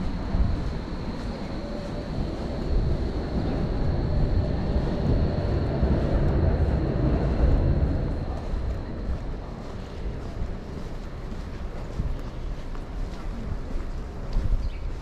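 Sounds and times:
low rumble of traffic: 0.0s - 15.0s
wind buffeting microphone: 0.0s - 15.0s.

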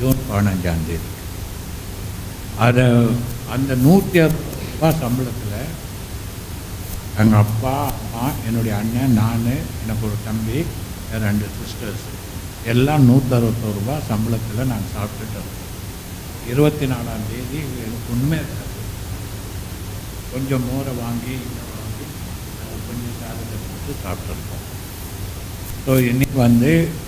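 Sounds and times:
man speaking into a microphone: 0.0s - 1.1s, 2.6s - 5.9s, 7.1s - 15.6s, 16.4s - 19.0s, 20.3s - 24.8s, 25.8s - 27.0s
steady background hiss: 0.0s - 27.0s.

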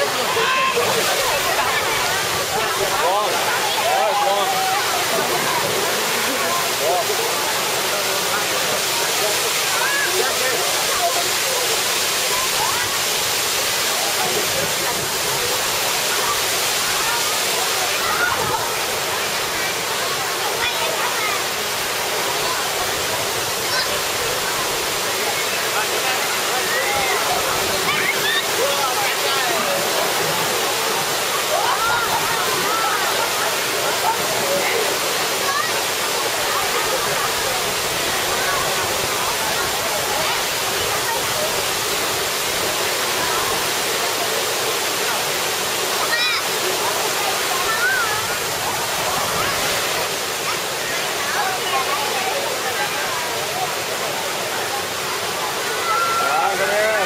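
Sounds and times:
water pouring down waterfalls: 0.0s - 57.0s.

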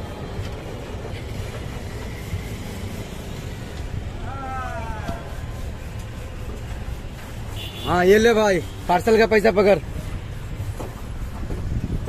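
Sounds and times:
passing traffic rumble: 0.0s - 12.0s.

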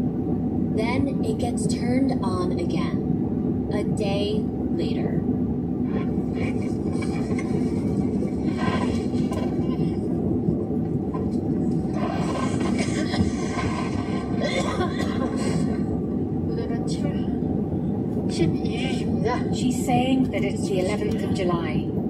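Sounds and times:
road and engine rumble: 0.0s - 22.0s
broadcast voice: 0.8s - 3.0s, 3.7s - 5.2s, 16.5s - 17.4s, 18.3s - 21.9s.

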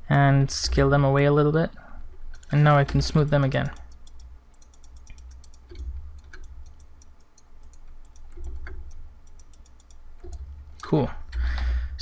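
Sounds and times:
mouse and keyboard clicks: 2.3s - 11.0s.

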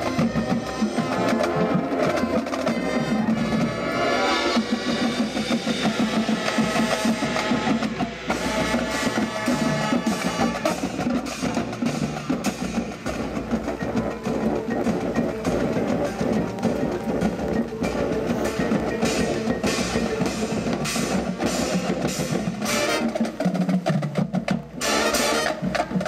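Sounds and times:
drums: 0.0s - 26.0s
marching band playing: 0.0s - 26.0s
marimbas: 0.0s - 26.0s.

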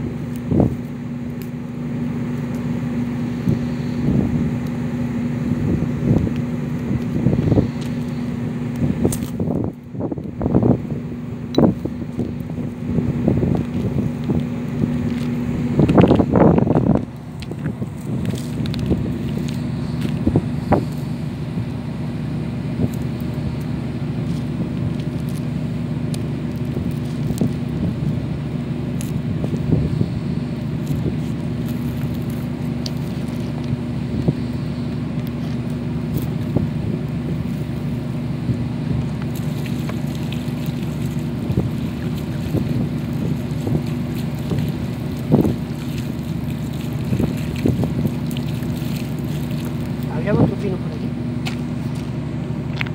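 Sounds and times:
wind buffeting microphone: 0.0s - 1.0s, 3.0s - 52.2s
low hum: 0.0s - 52.9s.

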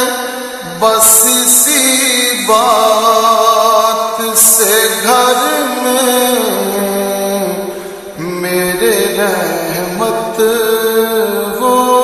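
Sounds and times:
unaccompanied voice singing with reverb: 0.0s - 12.0s.

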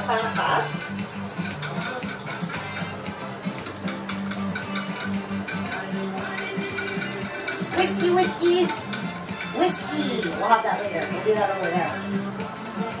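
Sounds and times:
background music: 0.0s - 13.0s
eggs whisked in a bowl: 0.0s - 13.0s.

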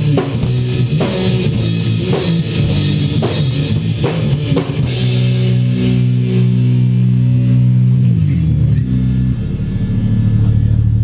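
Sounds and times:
electric guitar note ringing: 0.4s - 11.0s.

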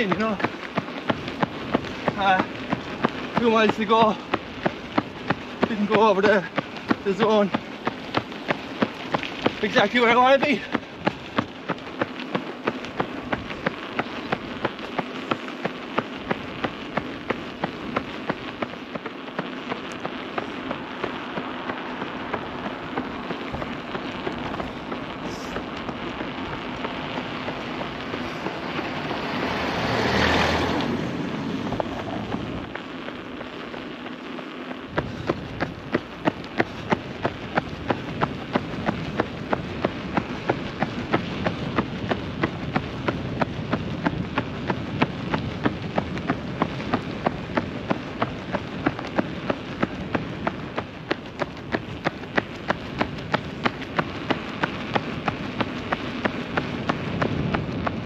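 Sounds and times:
footsteps slapping on asphalt: 0.0s - 58.0s
steady rushing noise: 0.0s - 58.0s.

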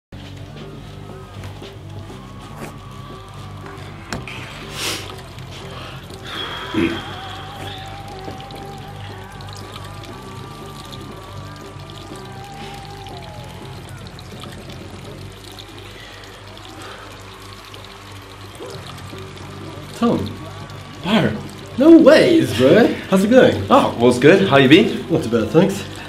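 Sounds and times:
background music with bass line: 0.1s - 26.0s
liquid pouring: 0.2s - 26.0s.

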